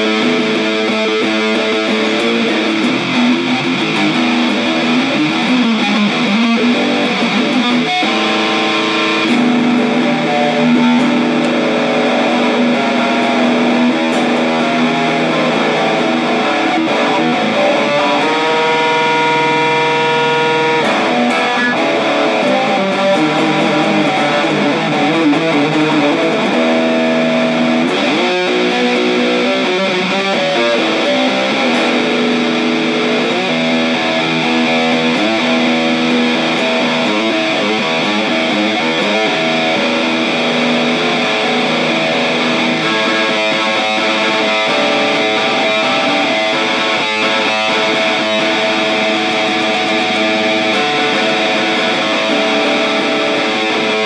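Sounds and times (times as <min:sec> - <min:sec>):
distorted electric guitar riffs: 0:00.0 - 0:54.0.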